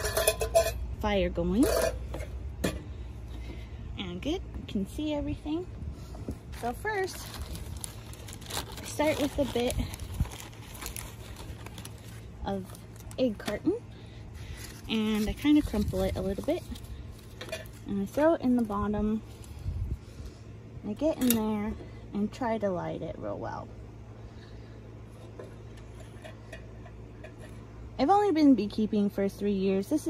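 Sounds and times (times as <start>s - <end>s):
paper egg carton rustling: 6.5s - 13.5s.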